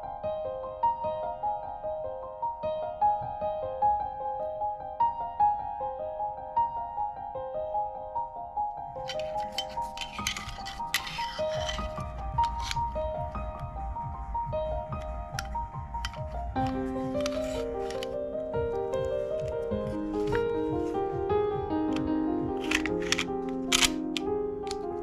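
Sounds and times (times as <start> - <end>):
soft background music: 0.0 - 25.0
pistol parts clicking and scraping: 9.0 - 13.0, 15.0 - 18.2, 21.9 - 25.0.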